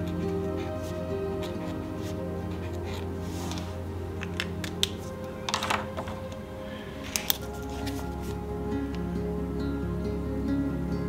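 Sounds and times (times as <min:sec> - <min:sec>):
paper rustling: 0:00.0 - 0:06.4, 0:07.0 - 0:08.4
background music: 0:00.0 - 0:11.0.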